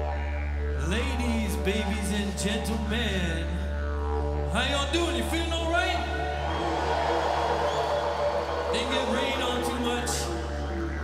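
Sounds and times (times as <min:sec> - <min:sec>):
low drone band music: 0:00.0 - 0:11.0
man vocalizing into microphone: 0:00.6 - 0:06.4, 0:08.7 - 0:11.0.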